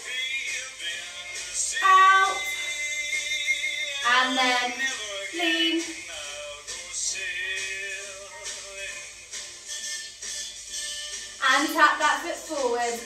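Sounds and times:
upbeat pop song with vocals: 0:00.0 - 0:10.5, 0:11.4 - 0:13.0.

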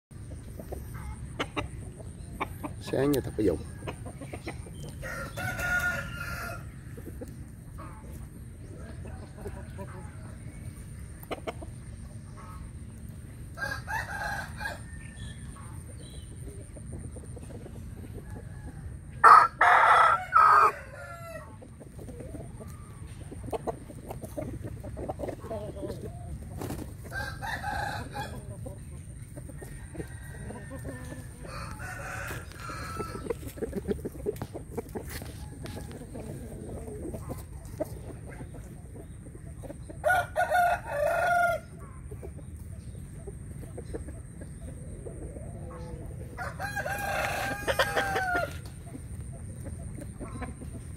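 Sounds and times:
rooster clucking: 0:00.1 - 0:50.9
rooster crowing: 0:05.0 - 0:06.7, 0:13.6 - 0:15.4, 0:18.4 - 0:21.5, 0:27.1 - 0:28.5, 0:29.6 - 0:33.3, 0:40.0 - 0:41.7, 0:46.4 - 0:48.6.

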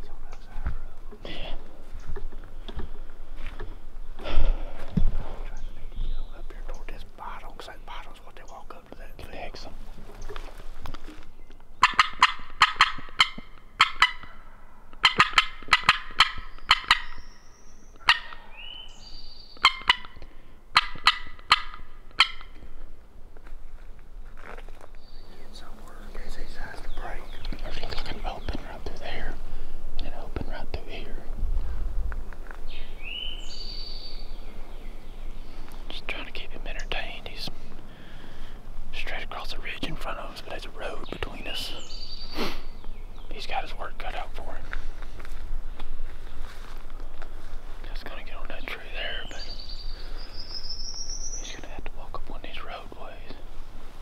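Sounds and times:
turkey call yelps: 0:11.8 - 0:14.4, 0:15.0 - 0:17.2, 0:18.0 - 0:18.7, 0:19.6 - 0:22.6
turkey gobbling: 0:11.8 - 0:17.2, 0:18.0 - 0:18.8, 0:19.6 - 0:22.6.

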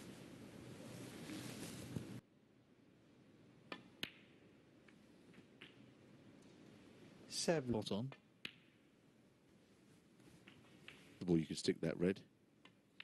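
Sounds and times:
snooker balls clicking: 0:03.7 - 0:06.5, 0:08.1 - 0:08.9, 0:10.4 - 0:11.2.

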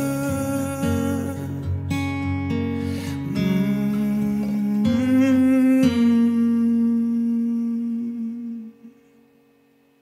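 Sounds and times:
acoustic guitar ringing: 0:00.0 - 0:10.0.

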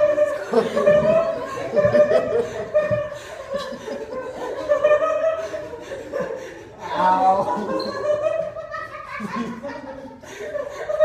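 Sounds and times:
women giggling: 0:00.0 - 0:11.0.

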